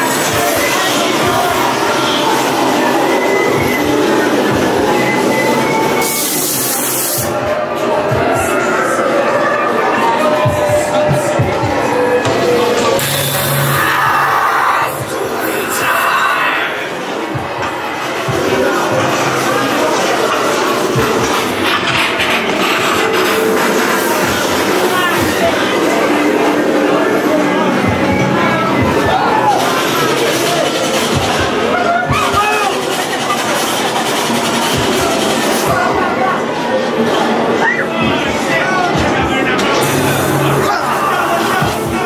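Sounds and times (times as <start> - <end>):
haunted maze soundscape: 0.0 - 42.0.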